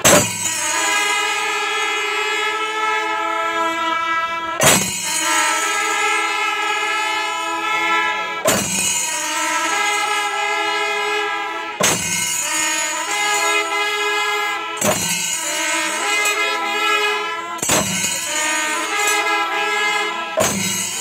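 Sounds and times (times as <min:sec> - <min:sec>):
percussion crash: 0:00.0 - 0:01.2, 0:04.6 - 0:06.1, 0:08.4 - 0:10.2, 0:11.8 - 0:13.6, 0:14.8 - 0:16.7, 0:17.6 - 0:19.7, 0:20.4 - 0:21.0
horns and pipes holding chords: 0:00.0 - 0:21.0.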